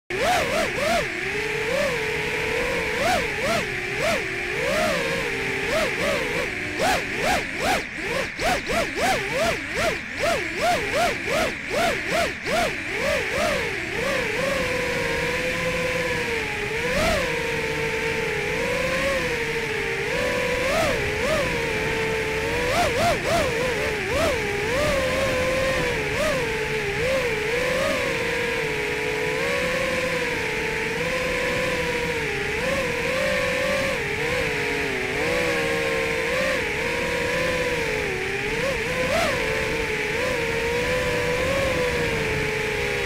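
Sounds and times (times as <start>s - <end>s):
quadcopter motors whining: 0.1s - 43.0s.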